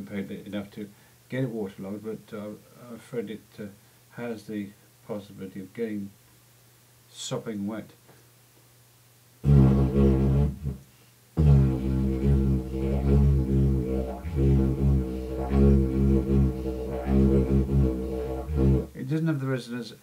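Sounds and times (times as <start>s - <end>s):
didgeridoo drone: 9.4s - 10.8s, 11.4s - 19.0s.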